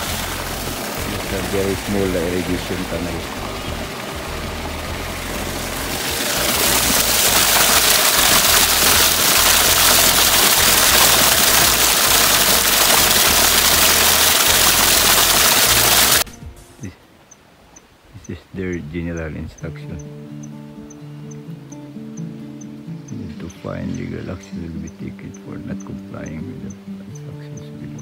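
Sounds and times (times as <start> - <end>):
water rushing down channel: 0.0 - 16.3.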